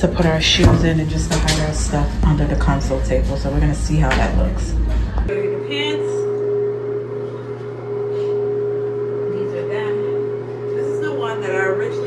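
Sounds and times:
lower hum: 0.0s - 12.0s
steady hum: 0.0s - 12.0s.

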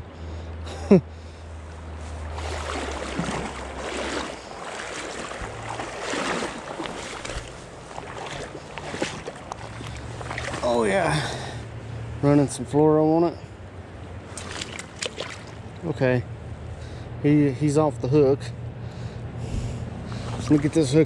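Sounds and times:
water splashing and sloshing: 1.2s - 12.1s, 13.6s - 16.0s, 19.5s - 21.0s.

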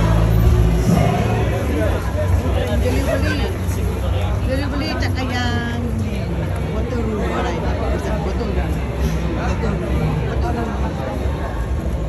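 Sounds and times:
low traffic rumble: 0.0s - 12.0s
people talking: 0.0s - 12.0s.

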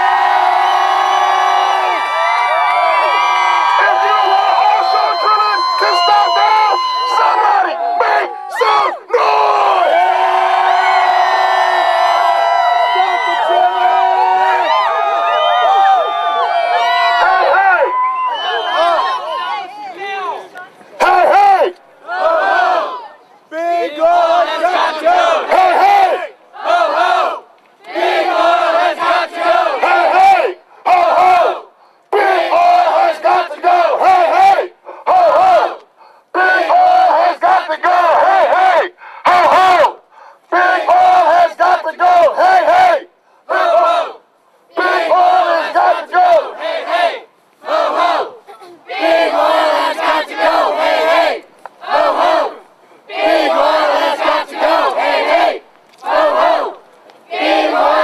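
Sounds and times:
crowd chanting a slogan: 3.0s - 15.2s, 16.0s - 58.0s.

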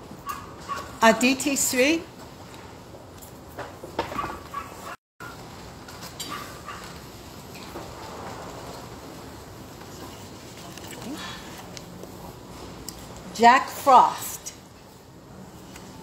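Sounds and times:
steady background noise: 0.0s - 16.0s.

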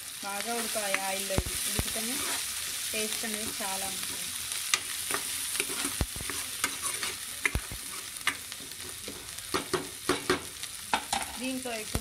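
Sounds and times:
onions sizzling in oil: 0.0s - 12.0s
spatula scraping pan: 0.5s - 2.6s, 3.3s - 9.3s.

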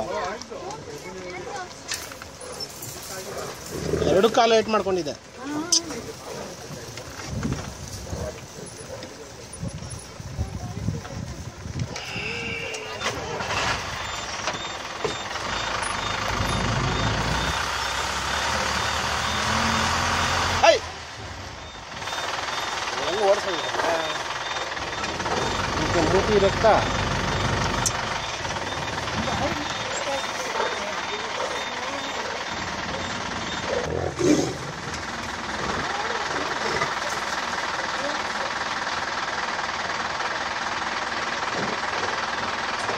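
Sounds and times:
vehicle engine and road noise: 0.0s - 42.9s
voices: 0.0s - 42.9s.

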